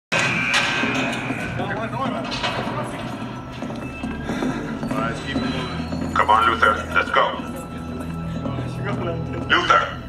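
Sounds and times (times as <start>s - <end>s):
footsteps on hard floor: 2.4s - 6.3s.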